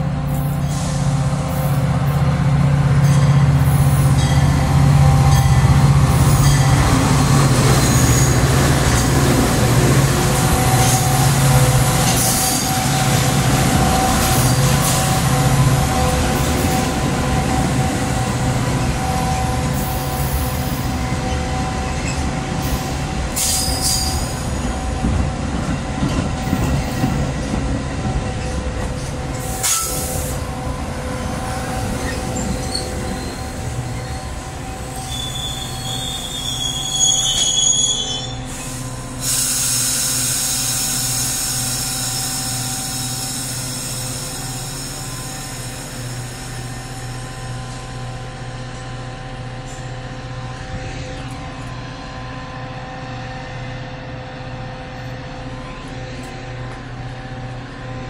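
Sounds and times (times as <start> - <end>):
locomotive engine humming: 0.0 - 39.3, 40.2 - 58.0
diesel train rumbling and braking: 0.0 - 58.0
high brake squeal: 7.7 - 8.4, 22.8 - 24.4, 31.7 - 45.6
hiss of air: 38.5 - 46.6.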